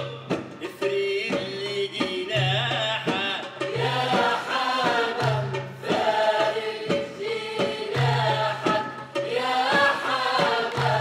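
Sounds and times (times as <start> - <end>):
group singing a chant-like melody: 0.0 - 11.0
struck drum beats: 0.0 - 11.0.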